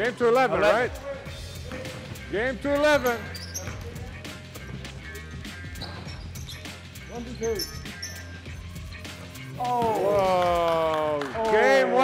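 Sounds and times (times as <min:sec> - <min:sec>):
background music: 0:00.0 - 0:12.0
basketball bouncing: 0:03.0 - 0:04.8
person shouting: 0:09.6 - 0:10.9.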